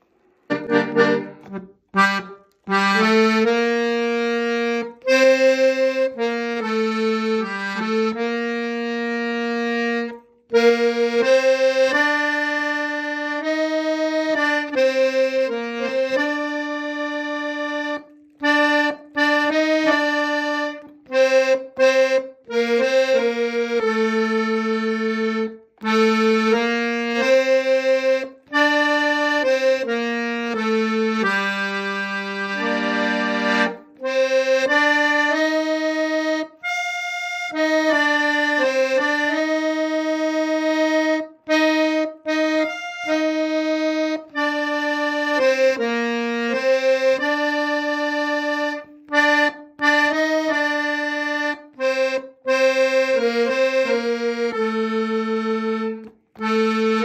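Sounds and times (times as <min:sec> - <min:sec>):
accordion slow melody: 0:00.0 - 0:57.0.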